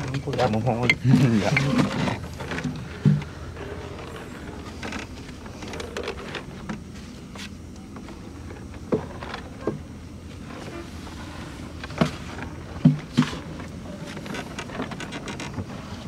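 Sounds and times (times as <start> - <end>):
fishing net hauled over boat: 0.0 - 16.0.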